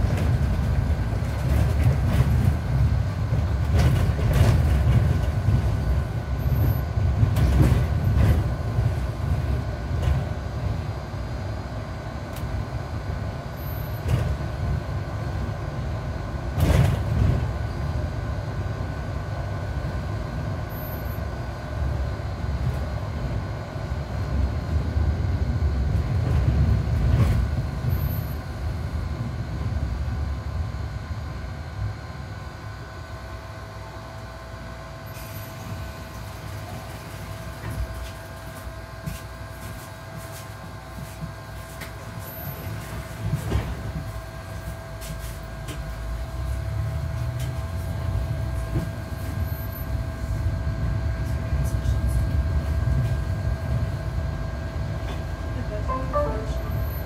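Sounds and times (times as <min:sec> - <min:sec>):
bus jolting over bumps: 0:00.0 - 0:06.2, 0:07.0 - 0:10.4
bus engine and road rumble: 0:00.0 - 0:57.0
steady whine: 0:00.0 - 0:57.0.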